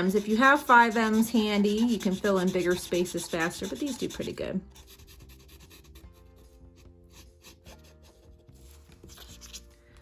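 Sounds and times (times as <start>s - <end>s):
paint pen rubbing on stone: 0.0s - 8.1s
faint background music: 0.0s - 10.0s.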